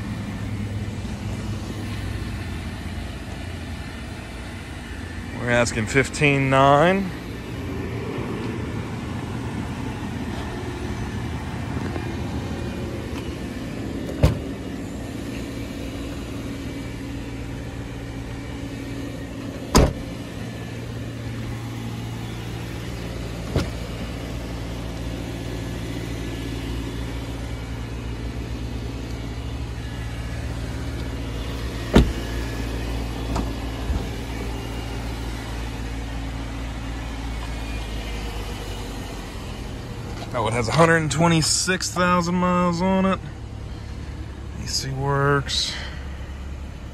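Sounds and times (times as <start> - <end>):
car engine idling: 0.0 - 46.9
car doors knocking: 14.0 - 14.5, 19.7 - 20.1, 31.8 - 32.3.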